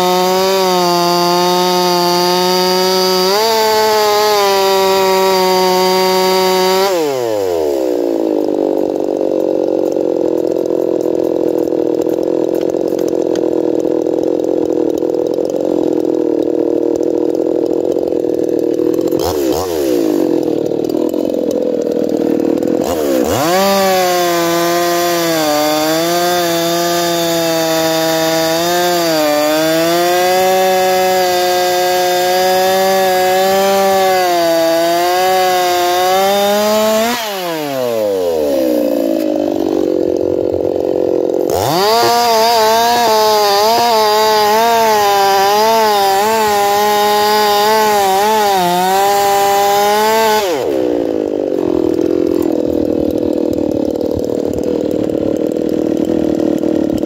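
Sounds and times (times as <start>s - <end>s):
chainsaw cutting wood: 0.0s - 57.0s.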